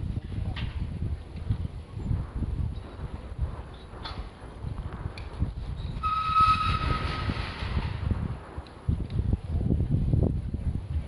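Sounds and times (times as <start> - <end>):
wind rumbling on microphone: 0.0 - 11.0
distant horn-like tone: 6.0 - 7.3.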